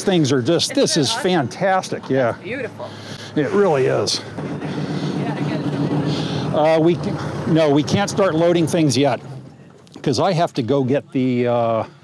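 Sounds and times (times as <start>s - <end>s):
small tractor engine idling: 0.0s - 10.0s.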